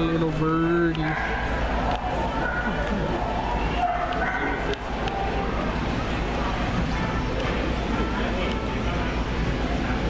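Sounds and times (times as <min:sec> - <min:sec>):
hum and chatter of a store: 0:00.0 - 0:10.0.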